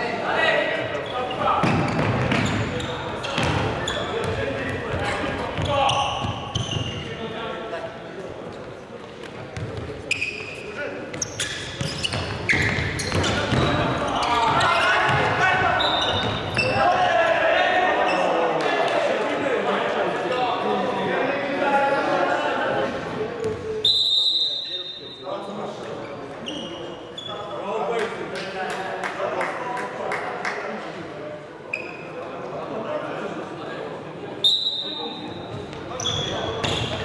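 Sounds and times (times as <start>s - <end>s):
players shouting: 13.1s - 19.4s.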